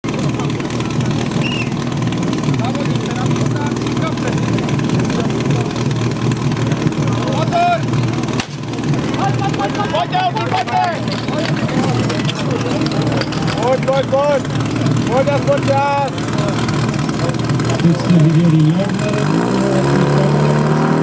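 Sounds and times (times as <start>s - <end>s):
motor pump engine running: 0.0s - 21.0s
crowd voices and shouts: 0.1s - 20.7s
sharp crack: 8.4s - 8.8s.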